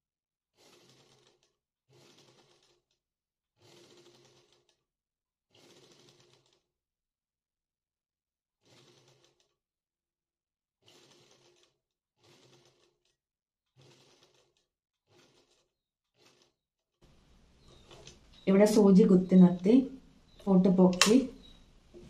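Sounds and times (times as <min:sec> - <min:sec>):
sewing machine stitching: 0:00.5 - 0:04.8, 0:05.4 - 0:06.7, 0:08.6 - 0:09.6, 0:10.8 - 0:19.6.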